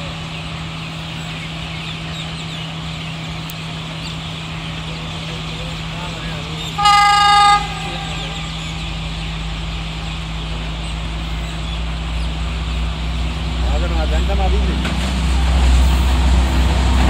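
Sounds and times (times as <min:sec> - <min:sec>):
train rumble: 0:00.0 - 0:17.0
train horn blast: 0:06.8 - 0:09.0.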